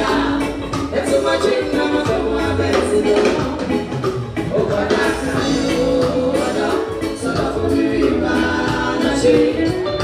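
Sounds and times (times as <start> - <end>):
live band with singing: 0.0 - 10.0.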